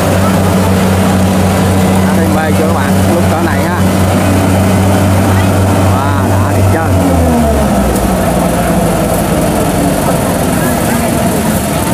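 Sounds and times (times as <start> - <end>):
diesel engine droning under load: 0.0 - 11.9.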